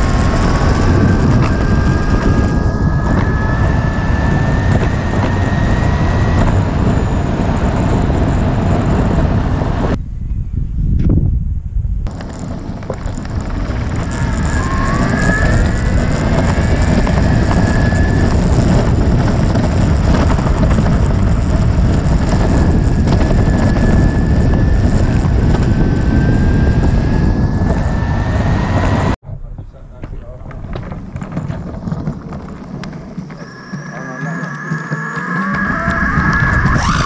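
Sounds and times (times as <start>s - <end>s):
electric motor whine: 0.0s - 10.0s, 12.1s - 29.2s, 31.2s - 37.0s
wheels rumbling on asphalt: 0.0s - 10.0s, 11.4s - 37.0s
wind noise: 0.0s - 37.0s.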